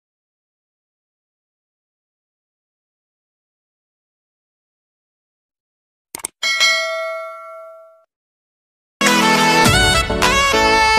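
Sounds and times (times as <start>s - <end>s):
bell-like chime ding: 6.4s - 8.1s.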